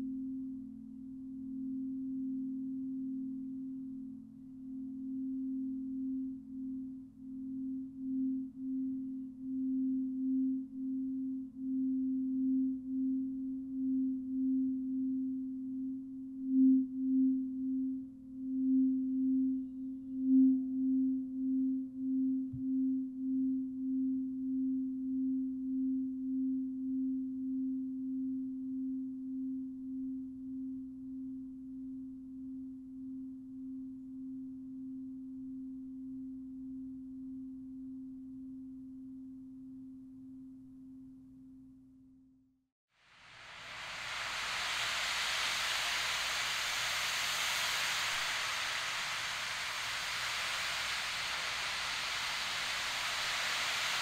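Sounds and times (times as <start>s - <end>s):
crystal singing bowl tone: 43.2s - 54.0s.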